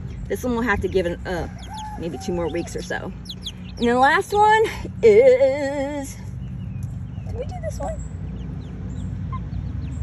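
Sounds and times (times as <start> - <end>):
steady low rumble: 0.0 - 10.0
chicks peeping: 0.1 - 4.6, 6.3 - 10.0.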